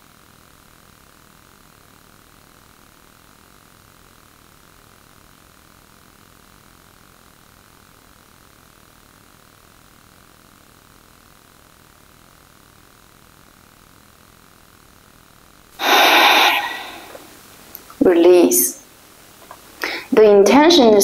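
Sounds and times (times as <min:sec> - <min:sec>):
faint room hiss: 0:10.7 - 0:21.0
woman exhaling forcefully through nose: 0:15.8 - 0:17.3.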